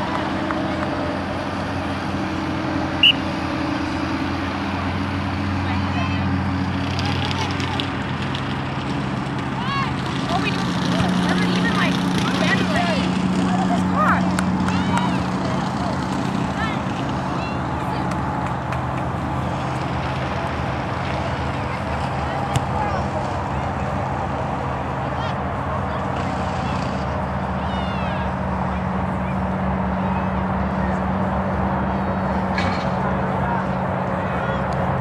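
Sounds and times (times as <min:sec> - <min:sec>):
referee's whistle blast: 0:03.0 - 0:03.3
distant shouts from players: 0:09.6 - 0:18.5, 0:25.0 - 0:31.0.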